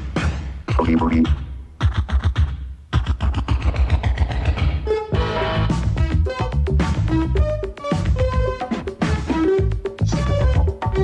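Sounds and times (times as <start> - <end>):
disco funk percussion: 0.0 - 4.8, 5.5 - 11.0.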